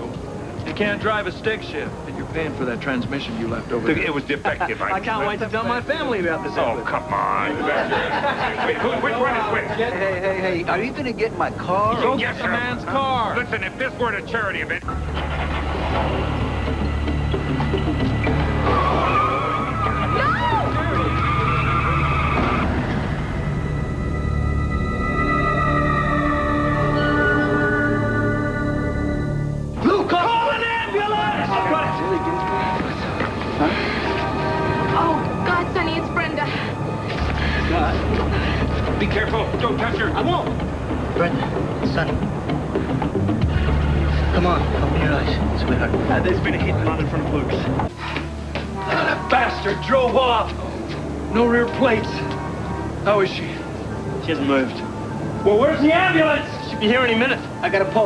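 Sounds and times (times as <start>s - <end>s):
background music low chord: 0.0s - 58.0s
car tyres screeching: 14.8s - 24.6s, 29.8s - 56.5s
woman screaming: 18.7s - 22.5s
hubbub of voices: 29.8s - 42.2s.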